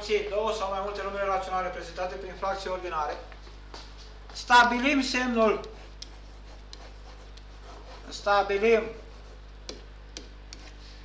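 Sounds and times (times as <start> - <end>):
low electrical hum: 0.0 - 11.0
stylus tapping on writing surface: 9.7 - 10.7.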